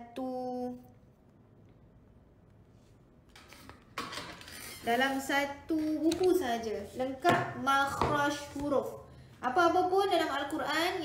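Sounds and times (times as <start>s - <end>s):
woman speaking: 0.0s - 1.0s, 4.8s - 11.0s.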